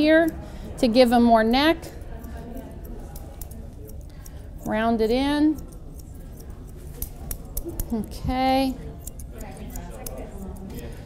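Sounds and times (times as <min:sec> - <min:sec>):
shears snipping clicks: 0:02.1 - 0:11.0.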